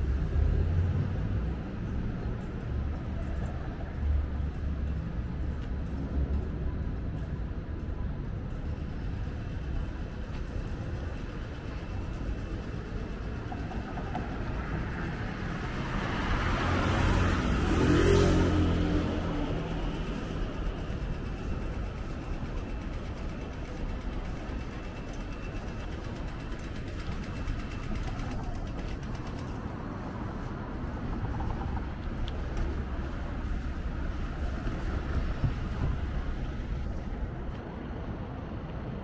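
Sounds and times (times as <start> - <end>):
city traffic hum: 0.0 - 39.0
vehicle passing close by: 15.4 - 20.5.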